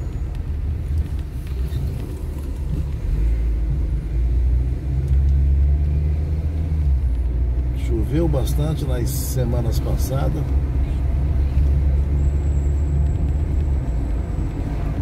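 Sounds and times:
car engine and road rumble: 0.0s - 15.0s.

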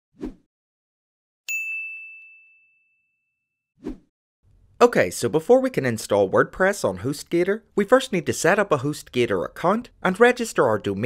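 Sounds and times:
bell-like ding: 1.5s - 3.5s.

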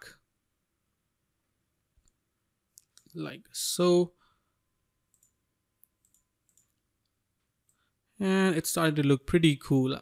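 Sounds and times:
computer mouse clicks: 5.1s - 7.8s.

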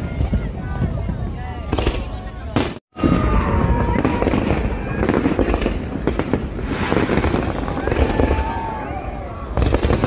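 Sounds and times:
fireworks bangs and crackles: 0.0s - 10.0s.

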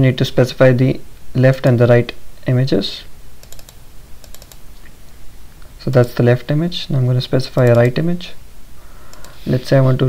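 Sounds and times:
computer mouse clicks: 3.4s - 4.9s, 7.6s - 8.0s, 9.1s - 9.4s.

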